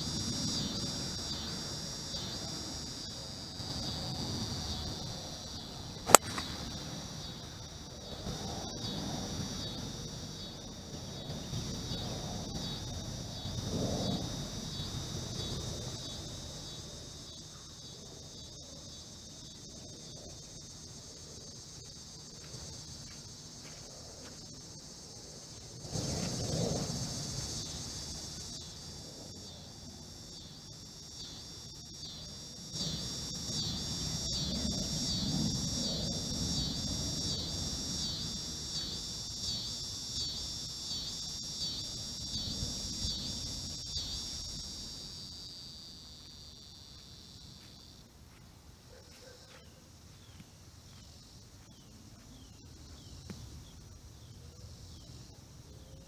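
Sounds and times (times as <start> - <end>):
insects buzzing in chorus: 0.0 - 56.0.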